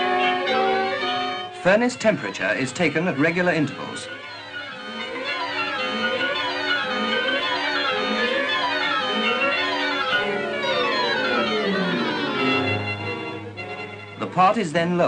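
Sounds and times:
orchestral strings music: 0.0 - 15.0.

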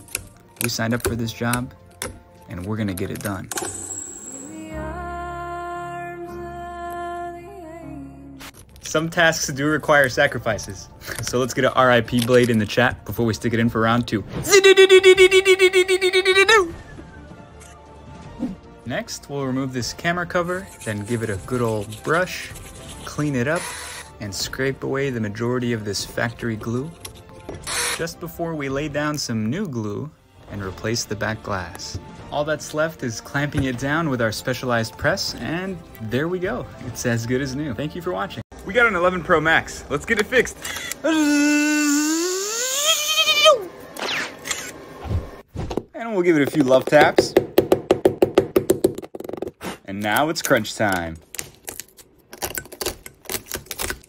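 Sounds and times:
wavering voice-like cry: 14.5 - 16.8, 41.0 - 43.7.

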